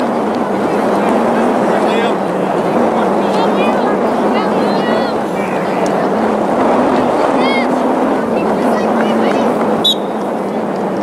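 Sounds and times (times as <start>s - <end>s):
distant shouting voices: 0.0s - 11.0s
loud rushing noise: 0.0s - 11.0s.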